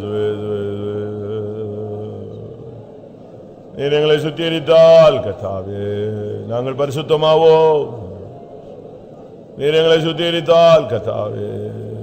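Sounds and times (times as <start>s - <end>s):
man singing a hymn unaccompanied: 0.0s - 2.8s, 3.7s - 8.2s, 9.6s - 12.0s.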